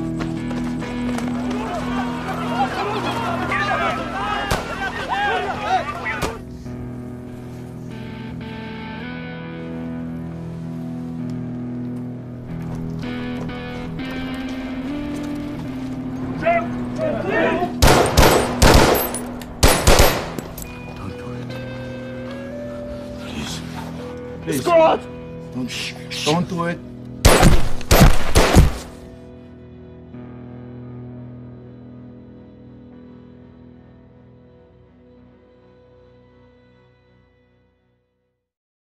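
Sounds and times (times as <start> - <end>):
orchestral score with low drone: 1.9 - 37.6
automatic gunfire bursts: 17.8 - 20.4, 27.3 - 28.8.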